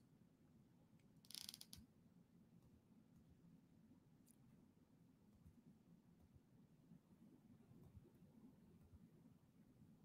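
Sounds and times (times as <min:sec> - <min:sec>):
computer mouse clicks: 0:01.0 - 0:01.9.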